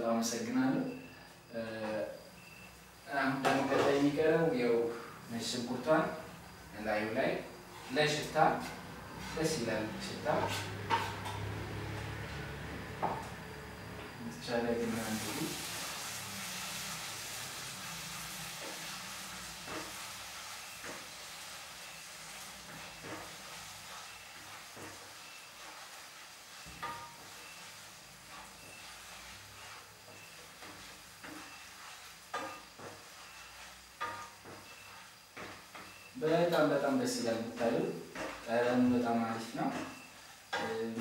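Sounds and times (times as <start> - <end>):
food sizzling in a frying pan: 0.0 - 41.0
wooden spatula scraping a pan: 7.7 - 12.6, 14.6 - 41.0.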